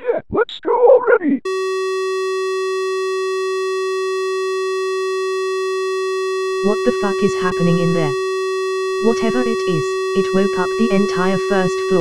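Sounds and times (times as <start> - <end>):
buzzy electronic censor tone: 1.5 - 12.0.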